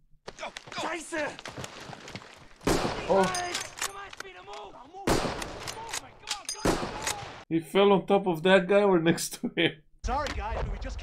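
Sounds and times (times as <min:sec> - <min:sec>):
voices: 0:03.0 - 0:07.4.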